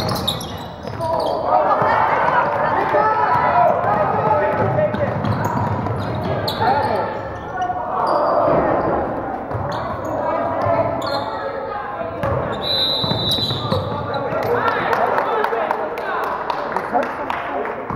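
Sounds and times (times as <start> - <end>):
basketball bouncing on court: 0.0 - 6.9, 12.2 - 14.6
sneakers squeaking: 0.0 - 14.6
echoing indistinct voices: 0.0 - 17.9.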